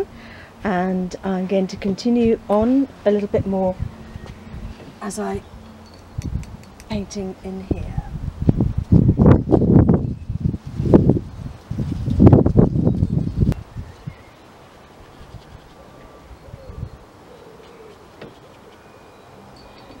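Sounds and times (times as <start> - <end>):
wind buffeting microphone: 0.0 - 14.2, 15.1 - 17.1
outdoor background: 0.0 - 20.0.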